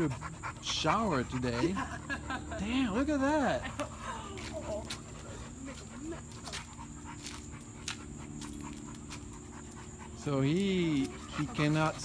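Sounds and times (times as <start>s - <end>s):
dogs panting: 0.0s - 12.0s.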